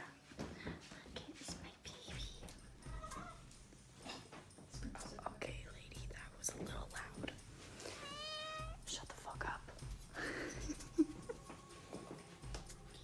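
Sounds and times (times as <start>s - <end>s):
footsteps: 0.0s - 5.5s, 11.2s - 13.0s
hushed whispering: 0.8s - 2.5s.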